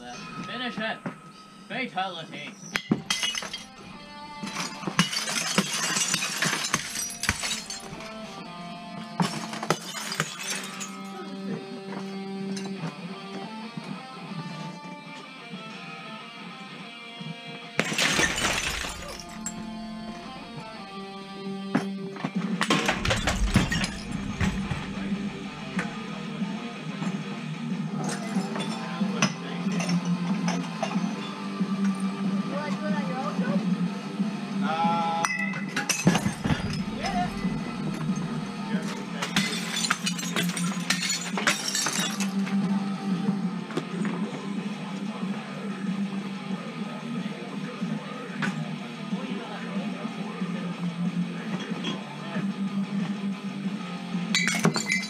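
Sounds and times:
background music with guitar: 0.0s - 55.0s
sledgehammer smashing objects: 3.0s - 8.2s, 17.8s - 20.7s, 22.6s - 26.1s, 36.0s - 42.4s.

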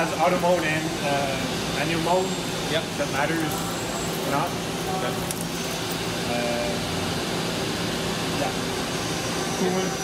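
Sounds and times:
machinery humming and hissing: 0.0s - 10.0s.

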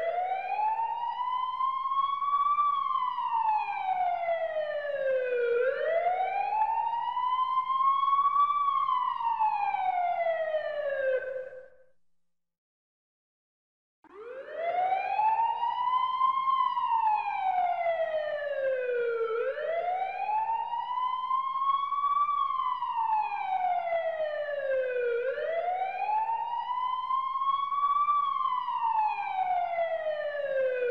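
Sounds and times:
ambulance siren wailing: 0.0s - 11.7s, 14.1s - 30.9s.

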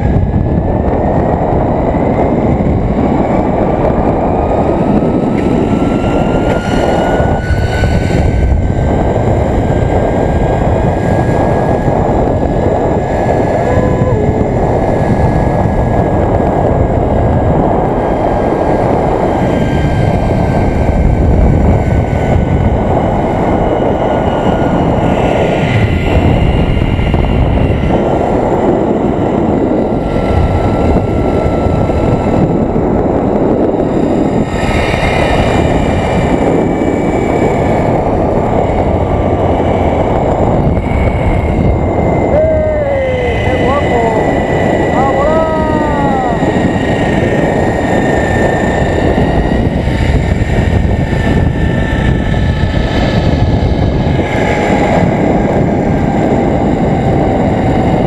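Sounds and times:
wind rushing on microphone: 0.0s - 58.0s
zipline pulleys whining on cable: 0.1s - 58.0s.

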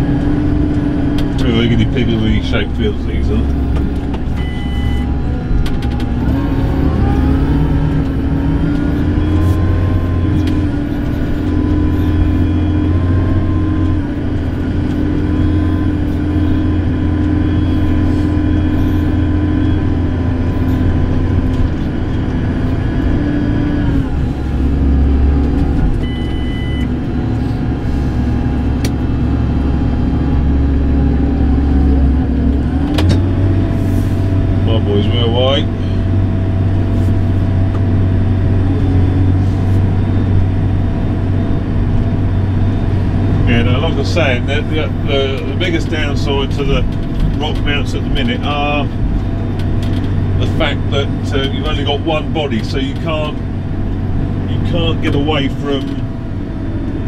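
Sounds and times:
tractor diesel engine running: 0.0s - 57.0s
electronic beep: 4.4s - 5.1s, 26.0s - 26.9s.

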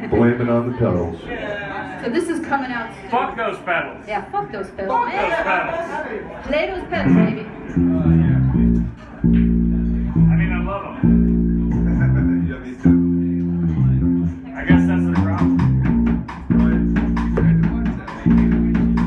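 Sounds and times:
bass guitar: 7.0s - 19.0s
electric guitar riff: 7.0s - 19.0s
drums with cymbal hits: 14.7s - 19.0s.

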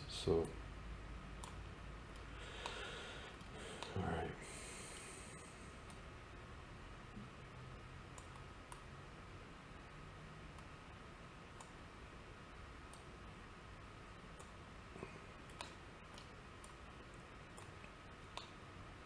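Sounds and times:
steady low hiss: 0.0s - 19.0s
computer mouse clicks: 1.4s - 2.8s, 8.1s - 8.9s, 11.5s - 11.8s, 14.3s - 14.6s, 15.4s - 18.6s.

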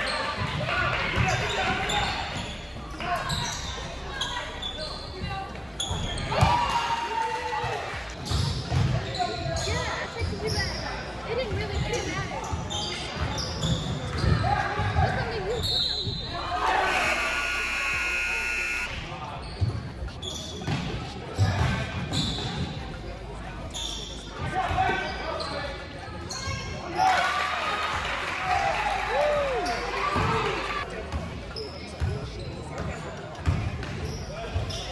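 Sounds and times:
voices calling out in gym: 0.0s - 34.9s
held tone: 16.8s - 19.2s.

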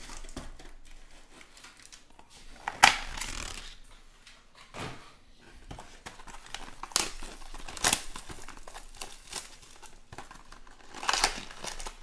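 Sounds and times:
packaging rustling: 0.0s - 3.8s, 5.6s - 12.0s.

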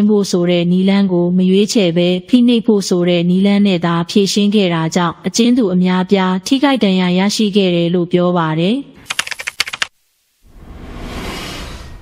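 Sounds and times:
rapid sharp clicks: 9.0s - 10.0s
rising whoosh: 10.4s - 12.0s.

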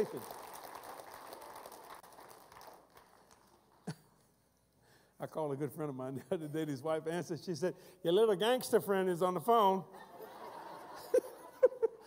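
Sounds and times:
man speaking: 5.2s - 9.9s.

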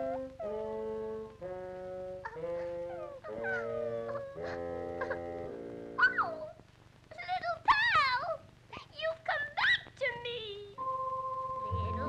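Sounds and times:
orchestral sustained chords: 10.8s - 12.0s.

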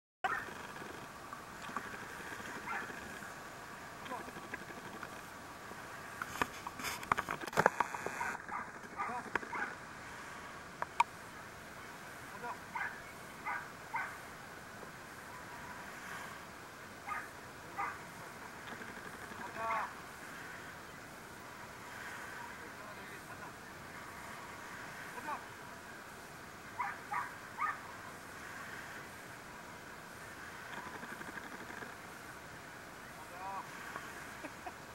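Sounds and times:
dog yelping: 0.2s - 0.5s, 2.6s - 3.0s, 12.8s - 14.2s, 17.1s - 18.0s, 26.8s - 27.8s
squeaky calls: 0.2s - 0.9s, 1.8s - 3.2s.

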